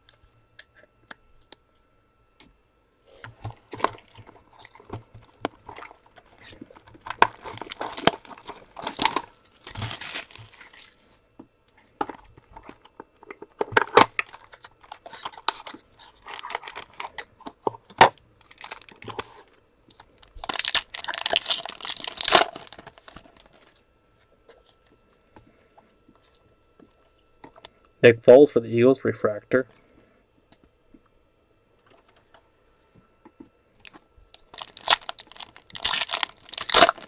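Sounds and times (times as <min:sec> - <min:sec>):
cellophane tearing and crinkling: 0:03.4 - 0:11.0, 0:12.1 - 0:23.8, 0:33.8 - 0:37.0.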